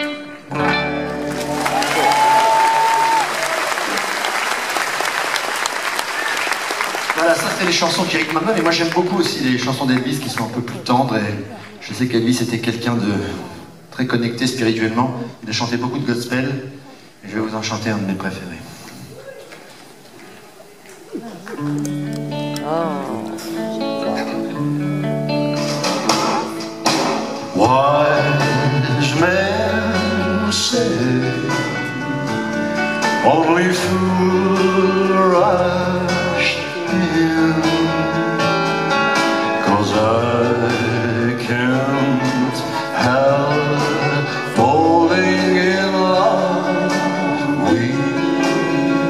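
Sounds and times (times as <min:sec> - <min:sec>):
electric guitar: 0:00.0 - 0:04.0, 0:21.0 - 0:49.0
rockabilly band playing: 0:00.0 - 0:11.1, 0:21.4 - 0:49.0
audience applauding: 0:01.0 - 0:10.9
man singing: 0:27.5 - 0:49.0.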